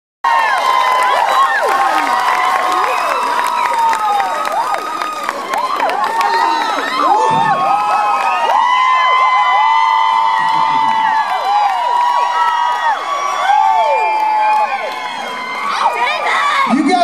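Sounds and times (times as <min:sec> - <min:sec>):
audience cheering and shrieking: 0:00.3 - 0:17.0.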